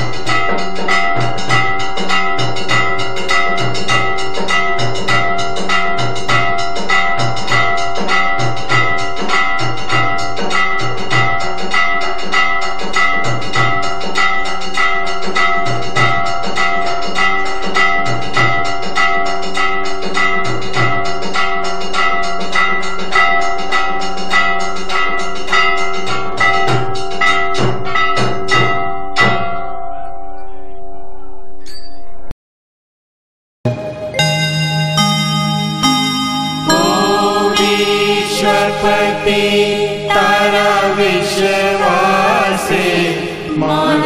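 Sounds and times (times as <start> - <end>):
bells and gongs struck rapidly: 0.0 - 29.8, 33.7 - 44.0.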